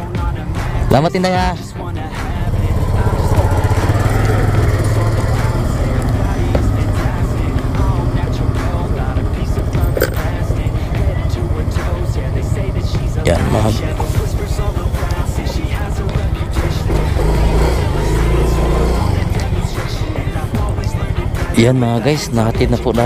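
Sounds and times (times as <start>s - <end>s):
motor scooter engine running: 1.7s - 23.0s.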